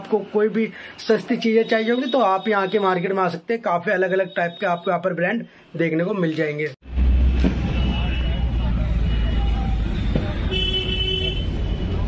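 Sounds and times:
people talking: 0:00.0 - 0:06.8
traffic rumble: 0:06.8 - 0:12.0
vehicle horn honking: 0:07.6 - 0:11.7.

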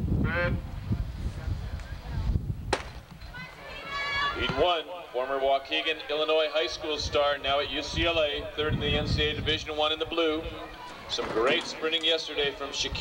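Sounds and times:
microphone rumble: 0:00.0 - 0:03.3, 0:07.6 - 0:10.6
starting pistol crack: 0:02.7 - 0:03.2
voices over public address: 0:03.2 - 0:13.0.

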